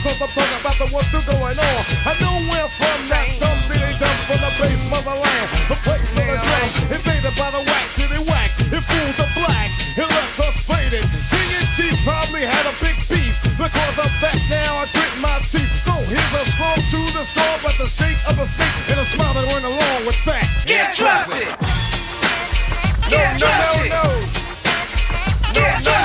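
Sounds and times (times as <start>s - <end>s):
deep repeated bass notes: 0.0s - 20.7s, 21.6s - 26.0s
rapping over a drum beat: 0.0s - 26.0s.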